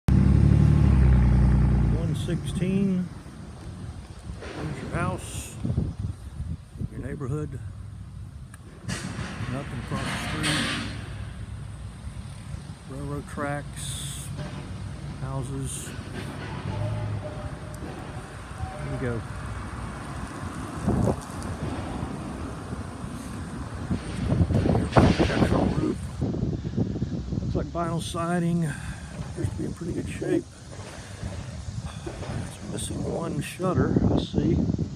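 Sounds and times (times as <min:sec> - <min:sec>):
engine rumbling: 0:00.0 - 0:34.9
wind on phone microphone: 0:03.6 - 0:08.3, 0:16.7 - 0:34.9.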